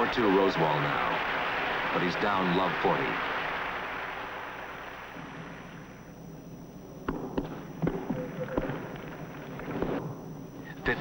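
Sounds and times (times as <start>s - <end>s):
tennis ball struck by rackets: 7.0s - 8.8s
tennis ball bouncing on court: 7.0s - 9.0s.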